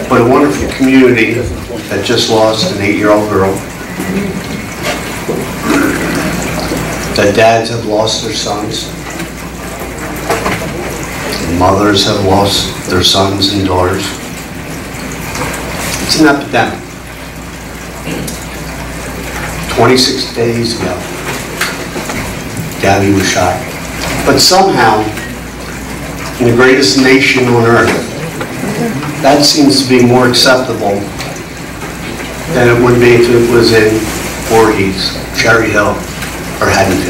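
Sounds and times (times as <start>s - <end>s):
man speaking: 0.0s - 4.4s, 7.2s - 9.0s, 11.3s - 14.2s, 16.1s - 16.9s, 19.7s - 21.1s, 22.8s - 25.2s, 26.4s - 31.2s, 32.5s - 37.0s
room noise hiss: 0.0s - 37.0s.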